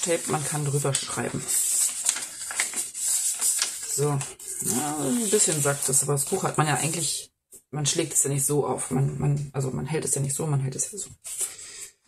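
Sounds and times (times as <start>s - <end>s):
paper rustling and crinkling: 0.0s - 6.6s, 11.2s - 11.6s.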